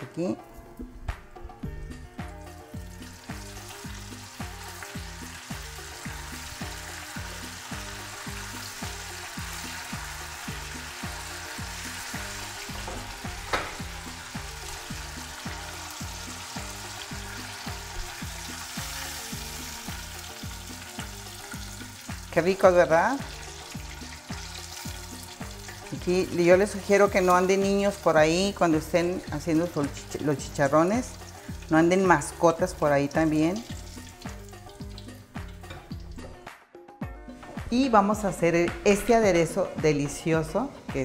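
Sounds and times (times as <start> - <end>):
background music with bass beat: 0.8 - 7.7
fish frying in oil: 2.2 - 36.3.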